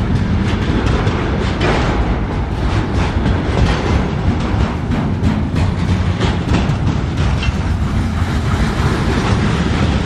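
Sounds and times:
freight train rumble: 0.0s - 10.0s
wheels clattering over rail joints: 0.0s - 10.0s.

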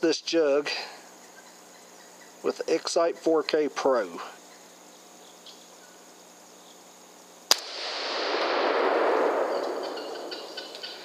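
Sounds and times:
rifle shot: 7.5s - 11.0s.

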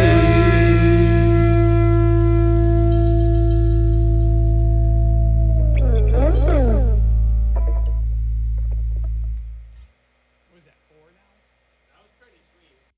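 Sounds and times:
echo-laden held chord: 0.0s - 8.4s
deep bass drone: 0.0s - 9.8s
pitch glides sweeping: 4.6s - 8.1s.

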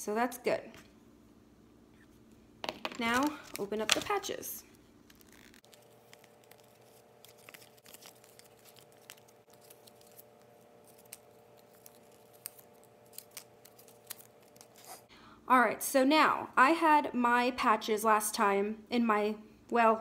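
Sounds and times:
faint steady hum: 0.0s - 20.0s
paper pouches tearing open: 5.0s - 15.0s.

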